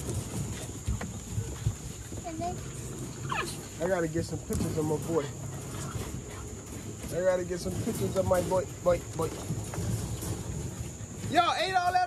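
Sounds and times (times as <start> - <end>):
puppies panting: 0.0 - 11.4
puppies whimpering: 2.6 - 3.9.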